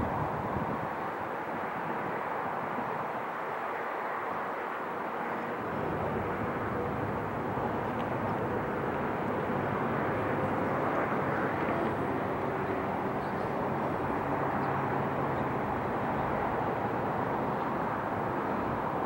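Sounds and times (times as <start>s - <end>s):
distant engine noise: 0.0s - 19.0s.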